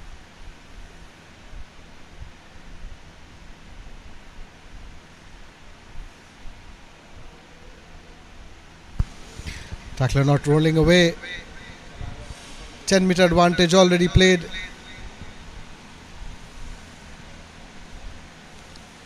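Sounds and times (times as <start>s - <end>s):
faint low hum: 0.0s - 19.0s
low wind rumble: 0.0s - 19.0s
microphone hiss: 0.0s - 19.0s.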